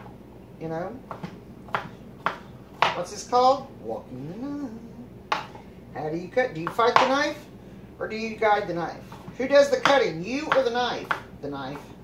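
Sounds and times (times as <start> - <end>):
knife chopping on board: 1.1 - 3.1, 5.3 - 5.6, 6.6 - 7.3, 8.6 - 12.0.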